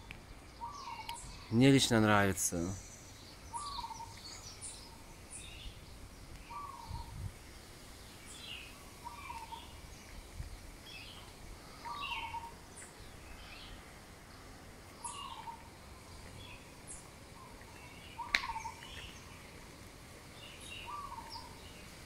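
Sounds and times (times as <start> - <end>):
low falling bird call: 2.7 - 5.8, 6.4 - 7.2, 8.1 - 13.8, 14.9 - 19.7, 20.4 - 21.8.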